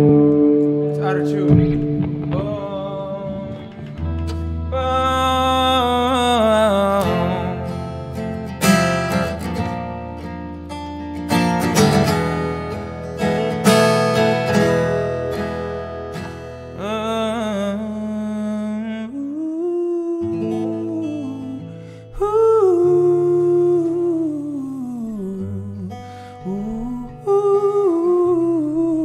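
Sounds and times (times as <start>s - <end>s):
acoustic guitar strumming chords: 0.0s - 29.0s
man singing: 0.8s - 9.4s, 16.7s - 29.0s.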